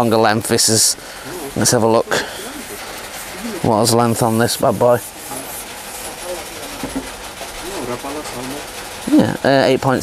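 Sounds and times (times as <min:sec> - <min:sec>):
low voice murmuring: 0:01.2 - 0:04.0
rubbing and handling noise: 0:01.4 - 0:09.2.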